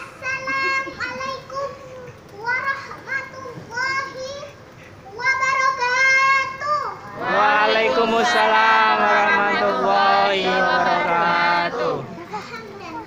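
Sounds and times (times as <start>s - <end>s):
girl chanting melodically: 5.4s - 12.3s.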